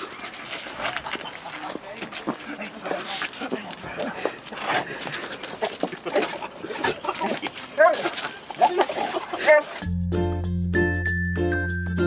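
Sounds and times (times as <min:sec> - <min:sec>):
rough background noise: 0:00.0 - 0:09.9.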